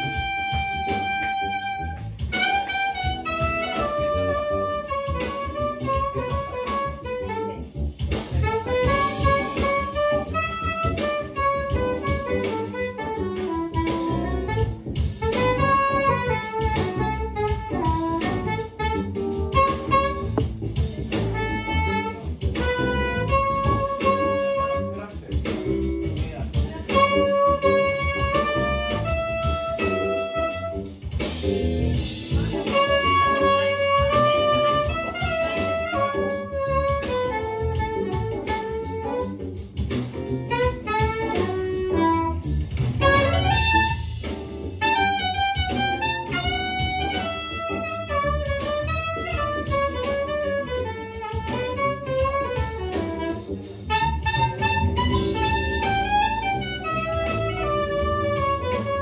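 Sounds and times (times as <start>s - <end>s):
guitar accompaniment: 0.0s - 59.0s
saxophone melody: 0.0s - 59.0s.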